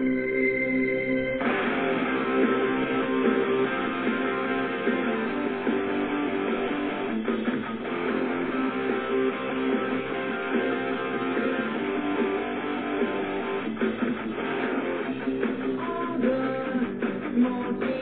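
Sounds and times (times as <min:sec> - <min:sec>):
rock music on radio: 0:00.0 - 0:18.0.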